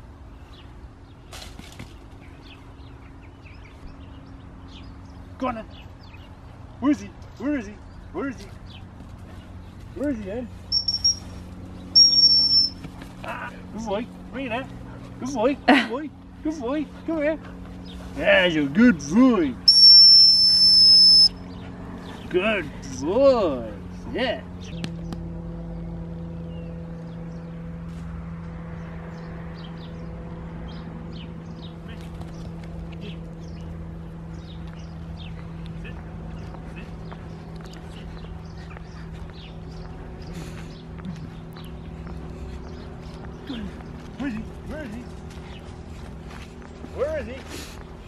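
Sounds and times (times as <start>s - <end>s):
steady low hum: 0.0s - 48.0s
high-pitched whistle blast: 10.7s - 11.2s, 12.0s - 12.8s, 19.7s - 21.4s
faint high chirps: 10.7s - 12.8s, 19.7s - 21.4s.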